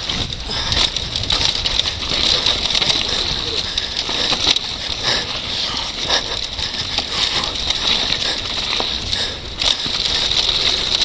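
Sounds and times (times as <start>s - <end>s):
bike clicks and rattles: 0.0s - 11.0s
bike tyres rolling over dirt: 0.0s - 11.0s
wind rumble on microphone: 0.0s - 11.0s.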